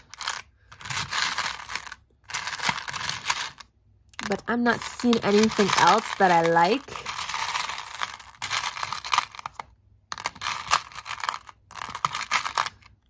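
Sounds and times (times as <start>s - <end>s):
buttons rattling in plastic box: 0.0s - 3.6s, 4.2s - 12.9s.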